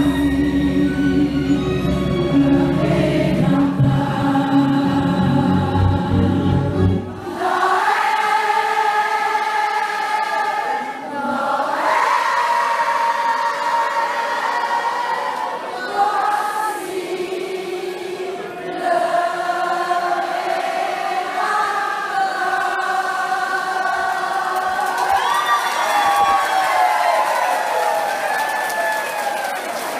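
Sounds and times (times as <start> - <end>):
low musical accompaniment: 0.0 - 7.6
crowd singing together: 0.0 - 25.3.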